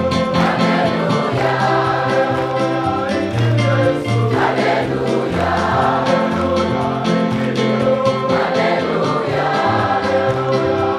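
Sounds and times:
choir singing gospel song: 0:00.0 - 0:10.9.

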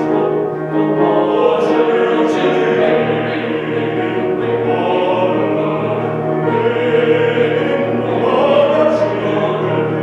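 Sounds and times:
men singing in harmony: 0:00.0 - 0:10.0.

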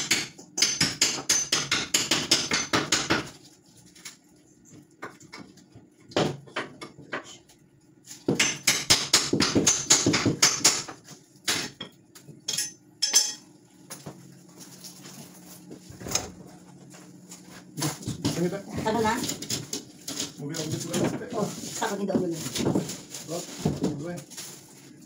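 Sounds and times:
metal tools clattering: 0:12.5 - 0:13.5.

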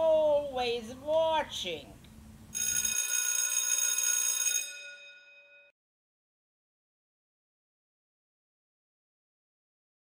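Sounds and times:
bell-like ringing tone: 0:02.6 - 0:05.8.

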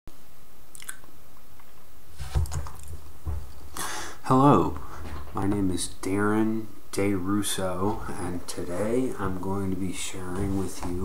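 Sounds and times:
microphone hiss: 0:00.1 - 0:11.0
soft bumps: 0:02.2 - 0:03.8, 0:08.7 - 0:11.0
breath drawn: 0:03.7 - 0:04.2
person speaking: 0:03.8 - 0:11.0.

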